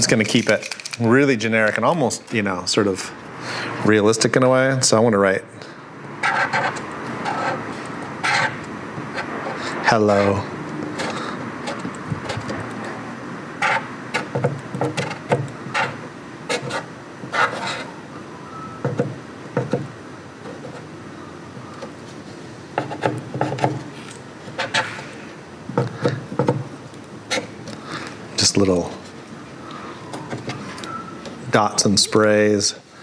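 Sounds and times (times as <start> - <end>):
low background hum: 0.0 - 33.0
marker scratching on wood: 6.2 - 13.0, 13.6 - 18.0, 20.4 - 20.9, 22.8 - 25.2, 27.3 - 27.6.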